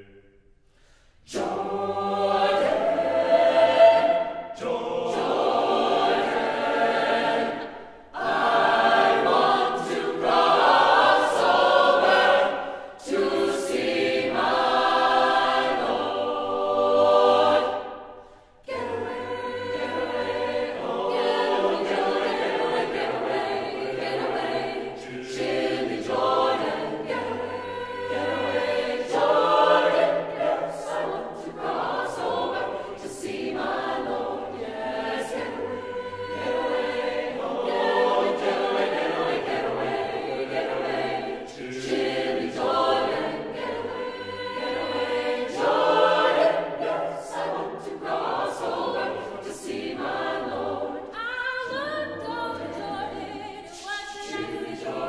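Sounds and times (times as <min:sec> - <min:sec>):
mixed choir singing a cappella: 0:00.0 - 0:55.0.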